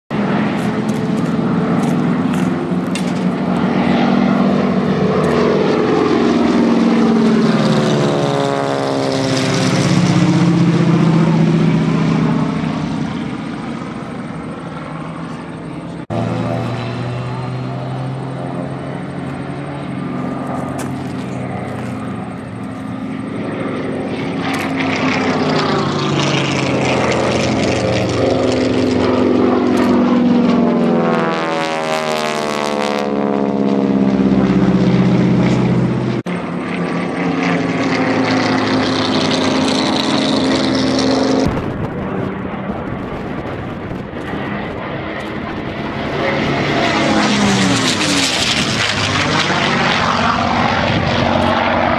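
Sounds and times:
propeller aircraft flying past: 0.1s - 51.9s
radial-engined aircraft overhead: 0.1s - 51.9s.

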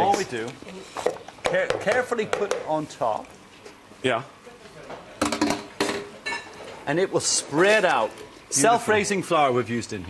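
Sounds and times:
utensils clinking on pans and glass: 5.2s - 6.8s.

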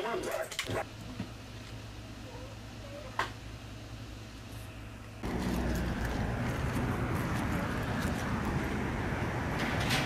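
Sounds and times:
faint indoor hum: 0.0s - 10.0s
low traffic rumble: 1.4s - 10.0s
city street noise: 5.2s - 10.0s.

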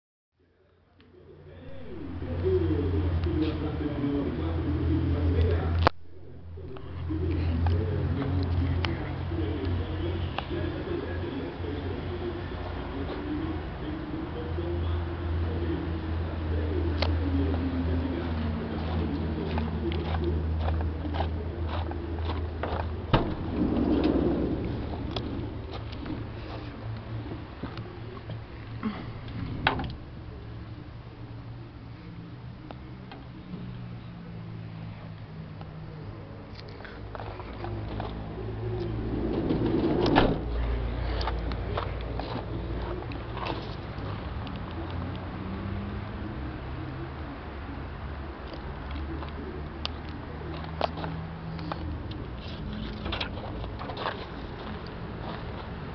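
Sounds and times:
low hum: 0.7s - 55.9s
sliding door rolling open: 22.7s - 26.6s, 39.1s - 41.0s.

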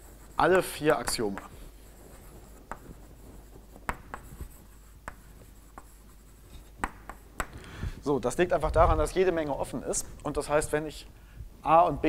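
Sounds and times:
chalk tapping and scratching: 0.0s - 7.6s.

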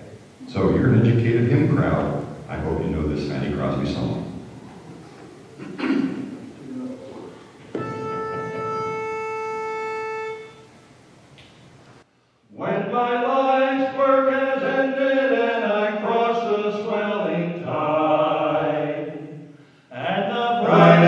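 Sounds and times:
pitch pipe note: 7.7s - 10.9s
male quartet singing a cappella: 12.5s - 21.0s.

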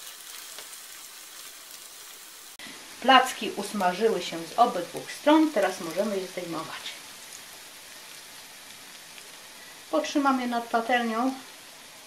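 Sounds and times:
pancakes sizzling in oil: 0.0s - 12.0s.

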